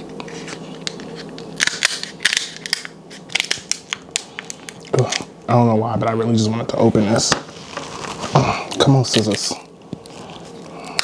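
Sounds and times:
crab shell cracking: 1.5 - 5.3.

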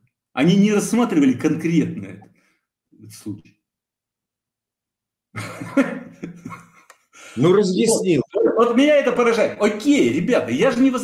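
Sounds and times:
man laughing: 5.4 - 6.9.

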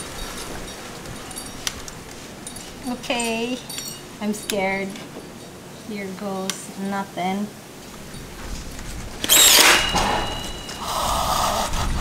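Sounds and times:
thin high ringing tone: 0.0 - 6.1, 9.2 - 11.3
nail gun shot: 9.3 - 10.5.

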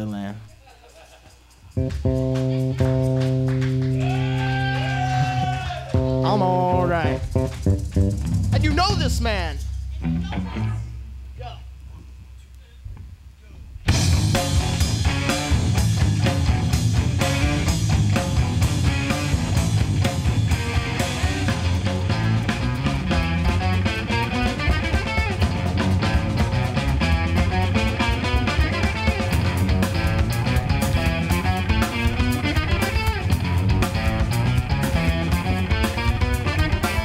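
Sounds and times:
bass: 0.0 - 0.5, 1.4 - 37.0
congas: 0.0 - 11.1
electric guitars: 1.7 - 11.2, 13.9 - 37.0
drum kit: 1.7 - 11.6, 13.8 - 37.0.

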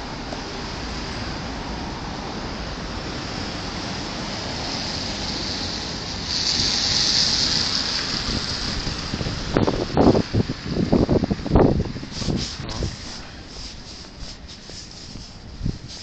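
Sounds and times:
street traffic: 0.0 - 16.0
wind: 0.0 - 16.0
hiss: 3.7 - 10.2, 12.0 - 16.0
bumps and rubs against microphone: 11.5 - 16.0.

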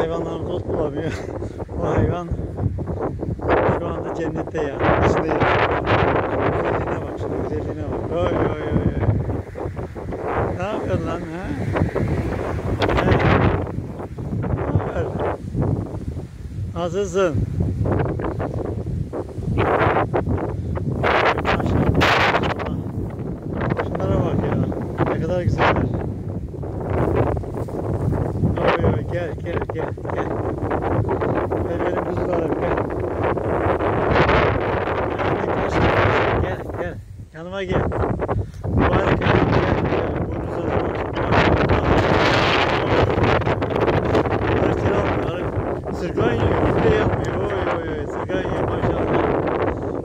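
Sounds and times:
rustling of tall grass: 0.0 - 50.0
wind buffeting microphone: 0.0 - 50.0
rustling in tall grass: 24.7 - 38.9.

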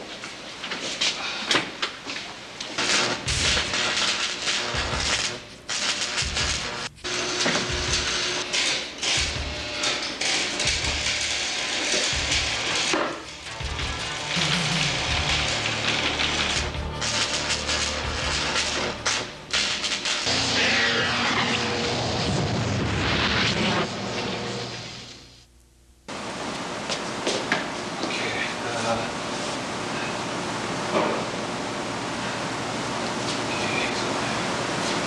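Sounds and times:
electronic sci-fi effects: 13.6 - 18.8, 20.3 - 24.6.

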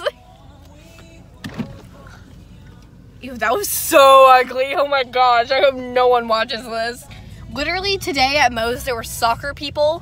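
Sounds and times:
car cabin hum: 0.0 - 10.0.

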